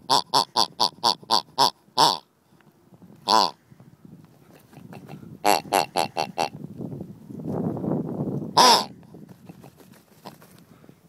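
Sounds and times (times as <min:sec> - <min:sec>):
squeeze toy grunts: 0:00.0 - 0:02.2, 0:03.2 - 0:03.6, 0:04.8 - 0:06.5, 0:08.6 - 0:08.9.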